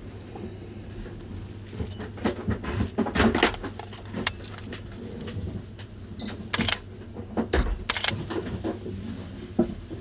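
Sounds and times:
camera shutter firing: 6.6s - 6.8s, 7.9s - 8.2s.

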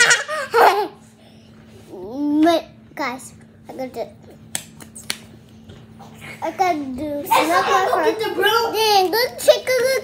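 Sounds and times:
finger snaps: 4.5s - 5.3s.

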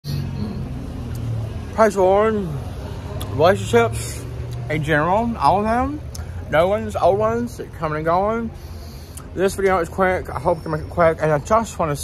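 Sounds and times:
car engine humming: 0.0s - 10.2s.

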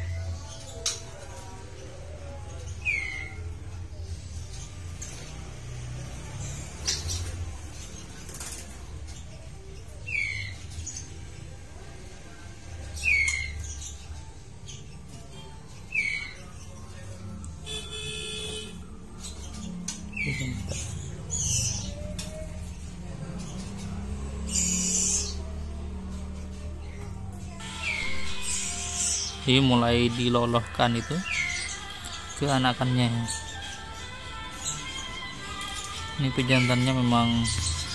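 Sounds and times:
bird chirping: 12.9s - 37.9s.

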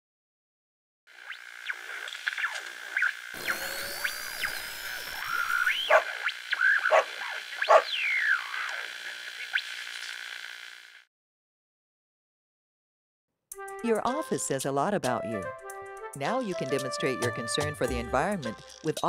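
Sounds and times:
synthesizer swoops and chirps: 3.4s - 9.7s.

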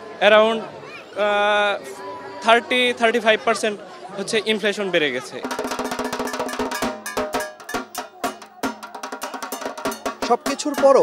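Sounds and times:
barrel drum beaten with sticks: 5.4s - 11.0s.

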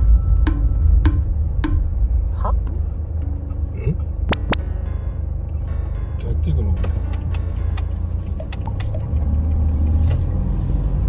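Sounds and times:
van engine rumble: 0.0s - 11.0s.

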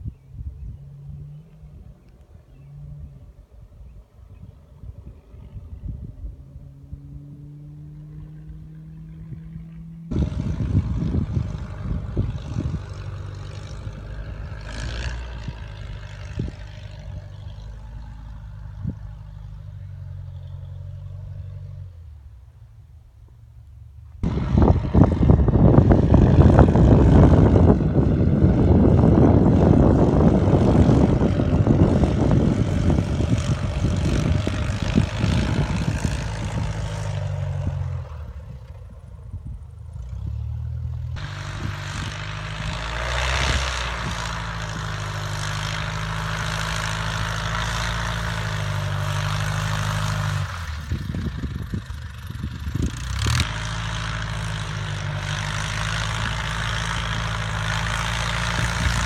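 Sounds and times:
propeller plane engine flying low: 0.0s - 59.0s.

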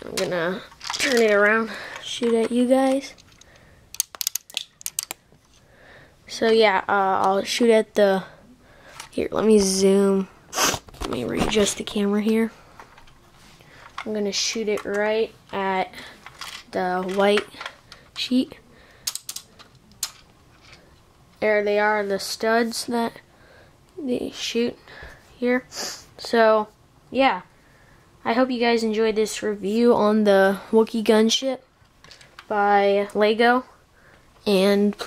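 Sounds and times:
plastic bricks clicking and rattling: 0.2s - 5.2s, 16.2s - 17.7s, 19.0s - 20.8s.

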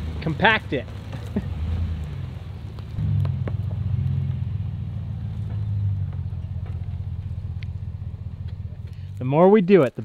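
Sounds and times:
pickup truck engine running low: 0.0s - 9.2s
twigs snapping under tyres: 0.2s - 4.5s, 5.2s - 10.0s.

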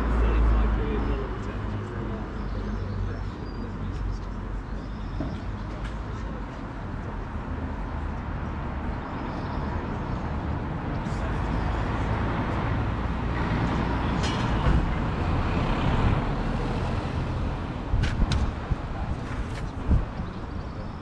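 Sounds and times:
vehicle engine and tyre noise passing: 9.7s - 20.9s.

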